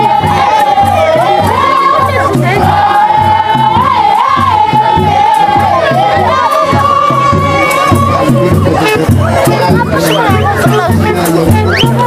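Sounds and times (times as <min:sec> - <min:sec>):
group singing and chanting: 0:00.0 - 0:12.0
large drum beat: 0:00.0 - 0:12.0.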